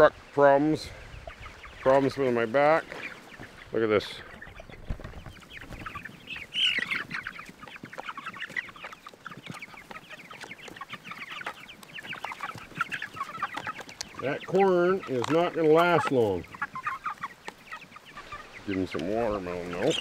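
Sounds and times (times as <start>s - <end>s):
chickens calling: 0.0s - 20.0s.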